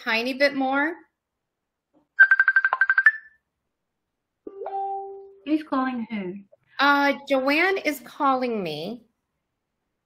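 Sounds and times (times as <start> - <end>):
ringtone trill of high beeps: 2.2 - 3.4.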